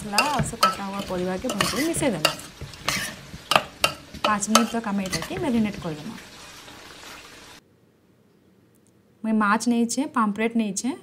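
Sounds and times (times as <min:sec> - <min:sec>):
spoon scraping and squelching mixture: 0:00.0 - 0:06.6
spoon clinking on steel bowl: 0:00.1 - 0:05.4.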